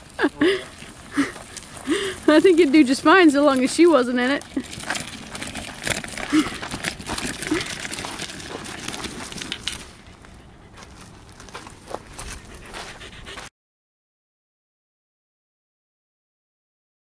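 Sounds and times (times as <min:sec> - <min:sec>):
crunching on gravel: 0:00.0 - 0:13.1.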